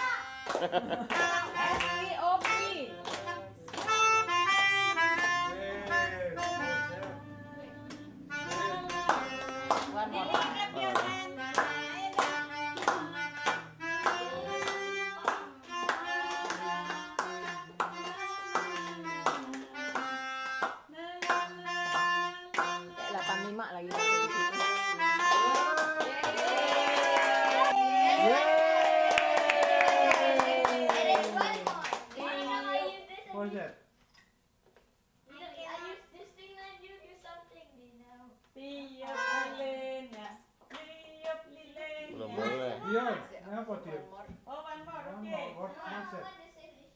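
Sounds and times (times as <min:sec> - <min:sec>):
melodica: 0:00.0 - 0:26.2
people clapping rhythmically: 0:00.0 - 0:32.8, 0:39.0 - 0:41.9
group singing: 0:14.1 - 0:19.9, 0:39.1 - 0:42.7
people shouting and cheering: 0:26.1 - 0:31.6.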